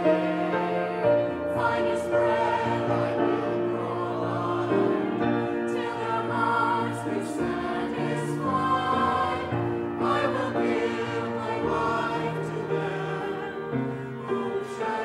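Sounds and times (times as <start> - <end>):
choir singing: 0.0 - 15.0.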